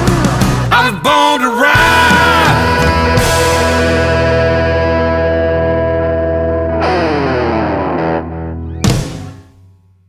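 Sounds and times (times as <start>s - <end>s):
distorted guitar chord ringing: 1.8s - 9.8s.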